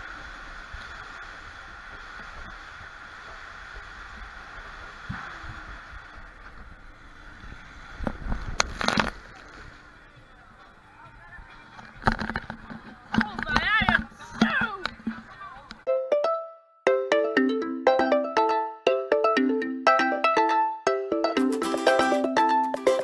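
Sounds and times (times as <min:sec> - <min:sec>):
running water rushing: 0:00.0 - 0:15.6.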